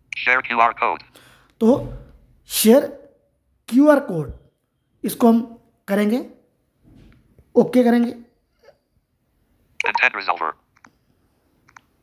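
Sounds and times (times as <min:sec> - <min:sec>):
screen reader voice: 0:00.1 - 0:01.1, 0:09.8 - 0:10.7.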